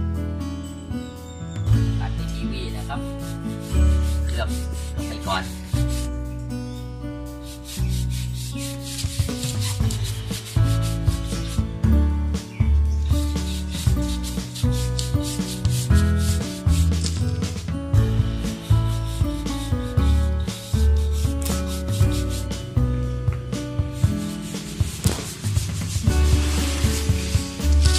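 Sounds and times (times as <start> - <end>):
background music with beat and bass: 3.0 - 27.9
applicator scratching on rubber tyre: 3.4 - 6.1, 7.4 - 11.6, 13.3 - 17.2.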